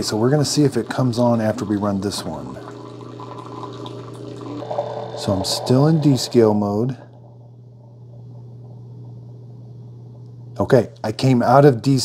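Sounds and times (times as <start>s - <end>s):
water pouring into a glass cup: 0.0s - 7.5s
machine low hum: 0.0s - 12.0s.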